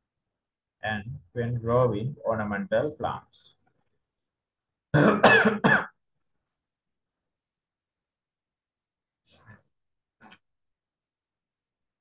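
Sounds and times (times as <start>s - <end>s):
man coughing: 5.0s - 6.0s.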